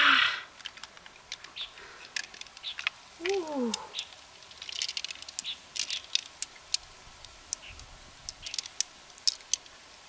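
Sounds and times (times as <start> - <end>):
small clicks and wet taps: 0.6 - 9.8.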